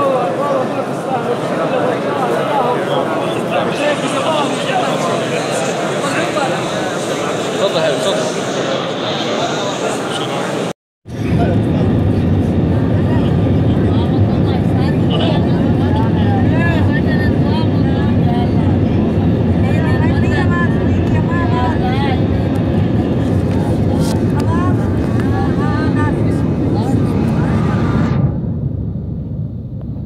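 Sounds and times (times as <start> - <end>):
people talking: 0.0 - 28.2
jet engines rumbling: 0.0 - 30.0.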